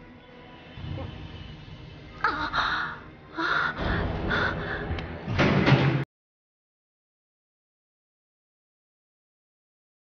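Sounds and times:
woman gasping breaths: 2.2s - 5.2s.

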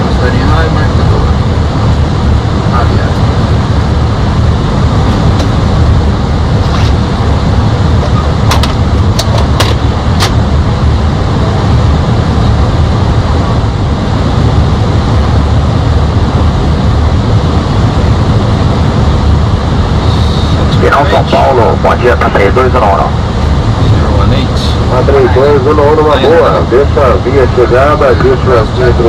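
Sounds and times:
airliner airflow and engine rumble: 0.0s - 29.0s.

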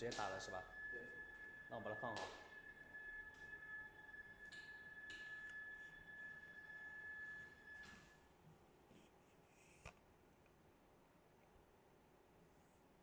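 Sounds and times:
printer high-pitched whine: 0.0s - 8.3s.

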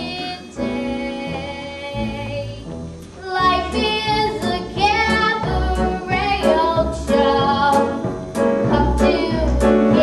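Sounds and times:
live instrumental accompaniment: 0.0s - 10.0s
young woman singing with vibrato: 8.6s - 10.0s.

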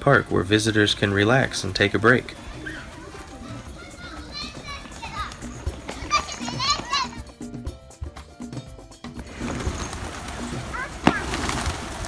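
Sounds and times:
background music: 0.0s - 12.0s
children shouting and squealing: 2.2s - 7.6s, 10.4s - 11.5s.

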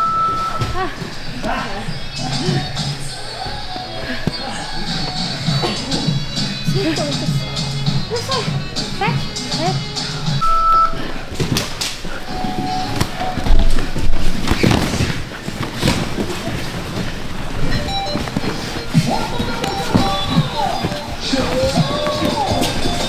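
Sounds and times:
background music with gliding tones: 0.2s - 14.5s, 17.4s - 23.0s.

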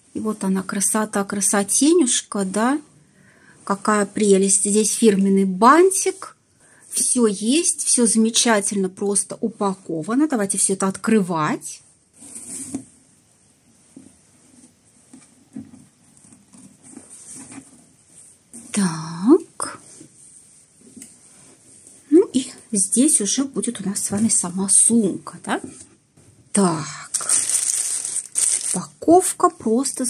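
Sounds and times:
ribbon rustling: 13.7s - 18.9s, 27.1s - 29.0s.

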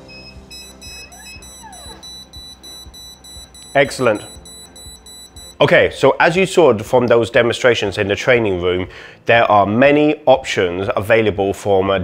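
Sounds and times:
electronic alarm beeping: 0.0s - 5.7s.

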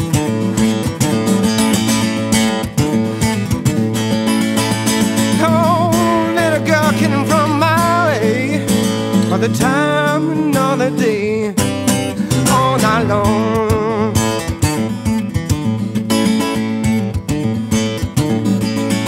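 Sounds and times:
acoustic guitar strumming: 0.0s - 19.0s
man singing: 5.2s - 14.8s.

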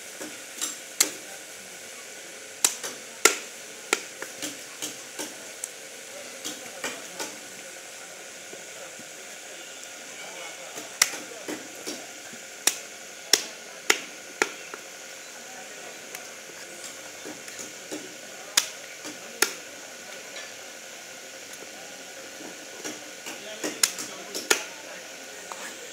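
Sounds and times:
steady background hiss: 0.0s - 25.9s.

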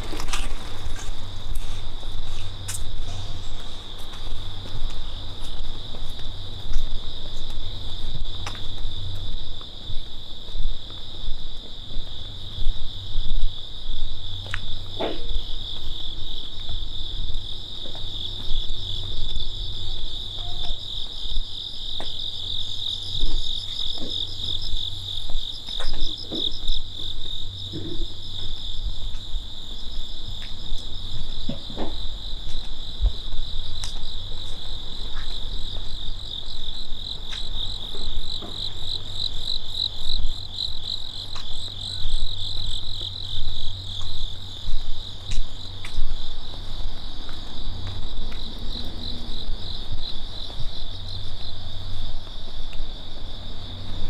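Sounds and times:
crickets chirping: 0.0s - 54.0s.

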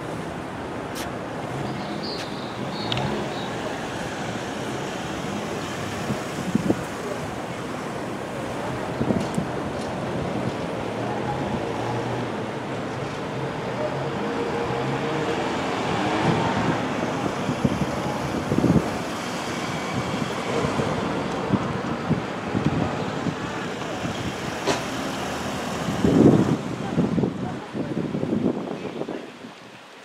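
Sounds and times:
town traffic: 0.0s - 30.0s.

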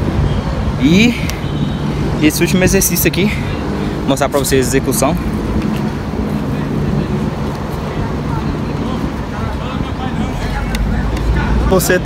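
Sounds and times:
faint voices: 2.1s - 12.0s.

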